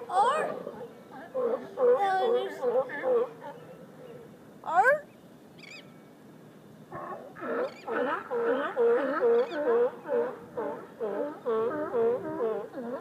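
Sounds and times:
sea lions barking: 0.0 - 4.3, 6.9 - 13.0.

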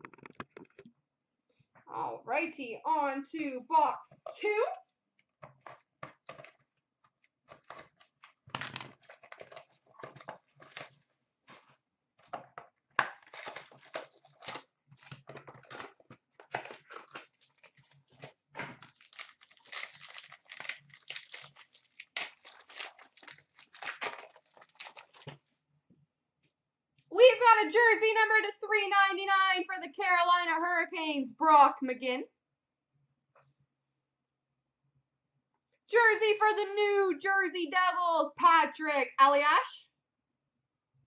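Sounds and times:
wrappers tearing and crinkling: 7.5 - 11.6, 13.0 - 25.4.

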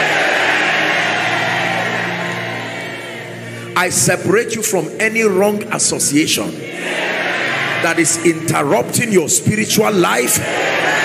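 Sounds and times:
church music held chord: 0.0 - 11.0
congregation noise: 0.0 - 11.0.

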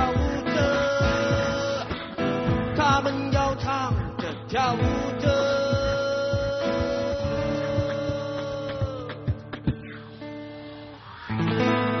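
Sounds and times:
band music with guitar chords: 0.0 - 12.0.

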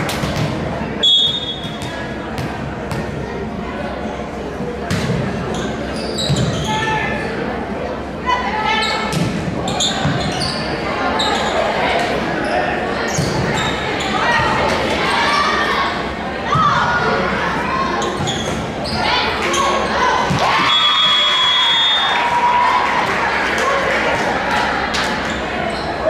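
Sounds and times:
players and spectators voices: 0.0 - 26.0
sneaker squeaks on hardwood floor: 5.0 - 6.8, 8.8 - 11.6, 13.1 - 14.2, 18.0 - 19.8
volleyball hits: 20.3 - 21.2.

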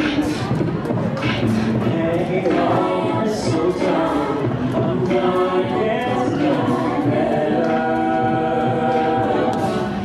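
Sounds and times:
a cappella group singing a carol: 1.2 - 10.0.

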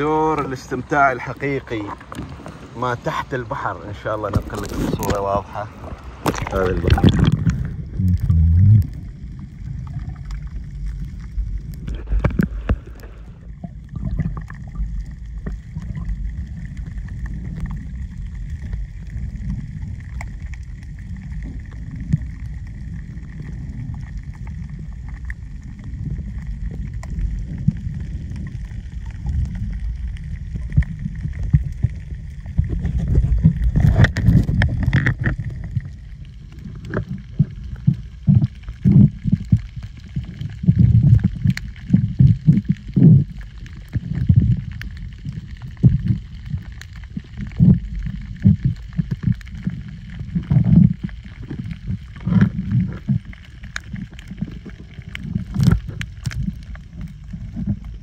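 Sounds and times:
muffled underwater water rumble: 0.0 - 58.0.

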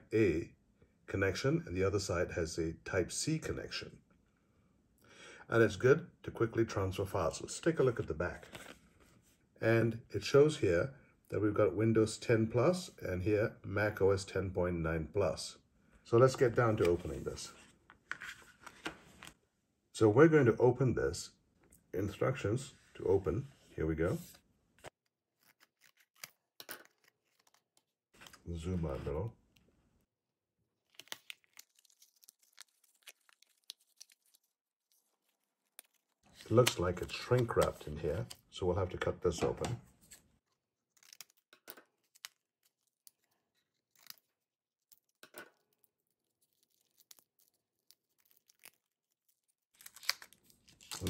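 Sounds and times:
paperboard package crinkling: 25.0 - 28.5, 30.8 - 38.4, 40.9 - 51.0.

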